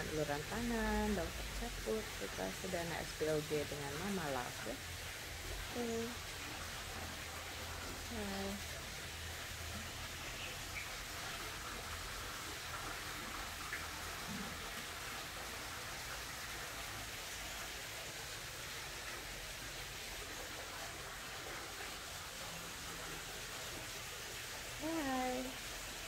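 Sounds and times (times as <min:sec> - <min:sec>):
low steady hiss: 0:00.0 - 0:26.0.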